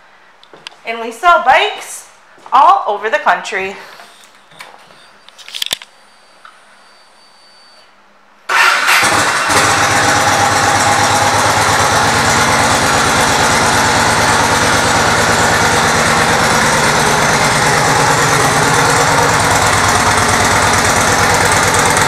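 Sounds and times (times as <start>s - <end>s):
motorcycle engine starting and idling: 8.5s - 22.0s.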